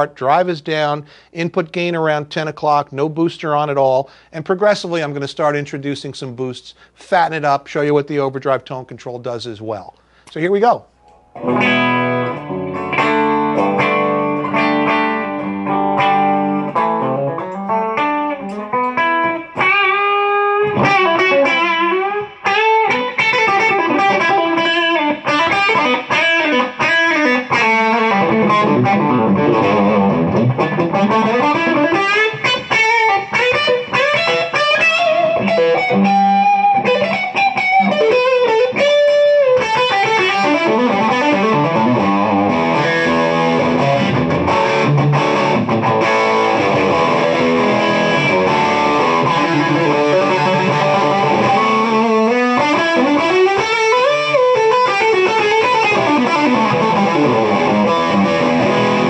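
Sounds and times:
overdriven electric guitar: 11.0 - 59.0.

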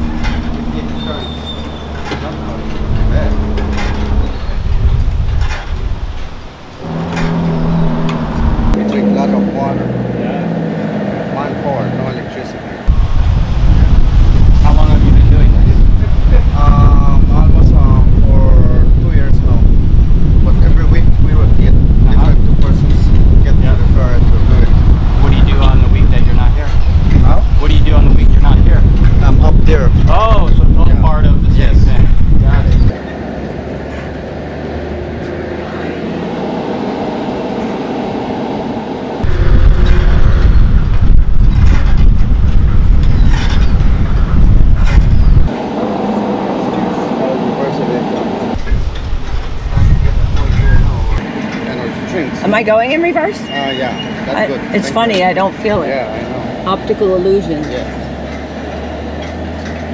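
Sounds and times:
wind buffeting microphone: 0.0 - 9.3, 12.8 - 51.8.

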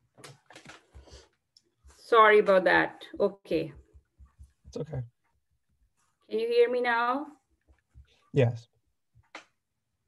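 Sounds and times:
faint clicks and rustles: 0.0 - 2.2.

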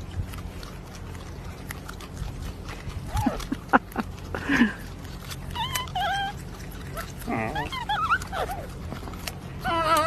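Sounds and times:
animal giving high wavering calls: 5.4 - 10.0.

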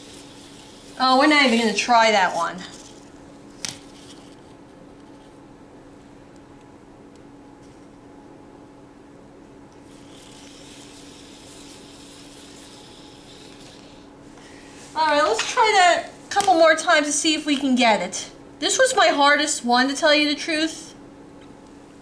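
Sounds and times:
robot ball motors whirring: 0.0 - 3.0, 9.9 - 14.0.

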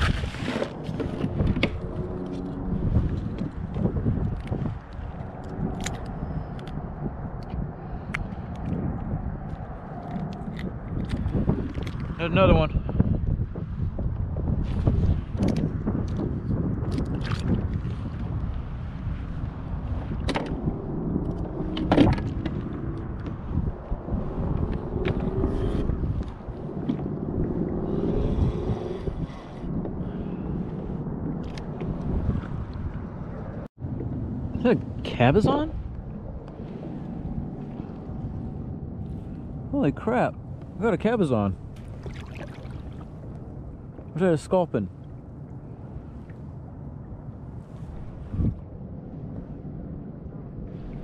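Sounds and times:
wind buffeting microphone: 0.0 - 51.0.

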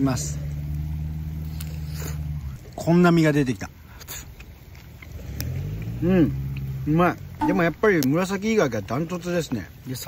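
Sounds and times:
low engine-like hum: 0.0 - 9.0.

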